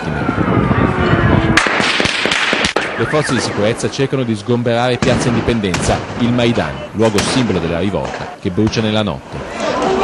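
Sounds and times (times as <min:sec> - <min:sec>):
continuous noise: 0:00.0 - 0:10.0
explosive bangs and cracks: 0:01.5 - 0:03.0, 0:05.0 - 0:08.8.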